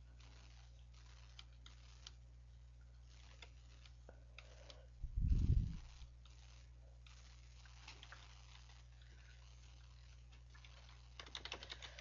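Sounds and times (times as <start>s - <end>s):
low electrical hum: 0.0s - 12.0s
computer mouse clicks: 10.3s - 12.0s.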